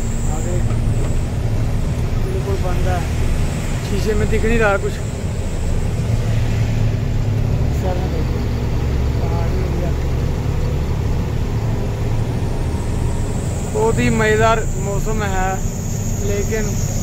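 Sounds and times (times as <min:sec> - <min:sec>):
road noise: 0:00.0 - 0:17.0
truck engine rumble: 0:00.0 - 0:17.0.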